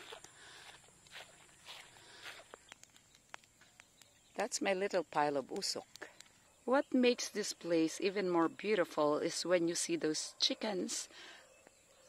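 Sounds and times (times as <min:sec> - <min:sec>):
footsteps on grass: 0:00.0 - 0:03.8.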